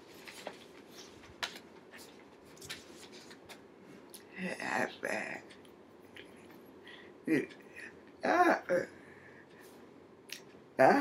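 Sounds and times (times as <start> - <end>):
woman making wordless sounds: 7.3 - 7.6, 8.2 - 8.9.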